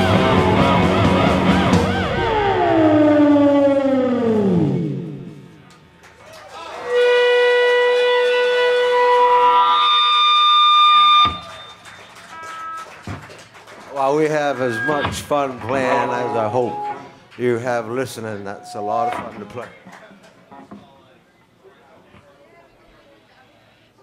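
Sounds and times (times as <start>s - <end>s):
rock band electric instruments: 0.0s - 6.0s, 14.6s - 17.3s
held chord of electronic tones: 15.7s - 17.2s.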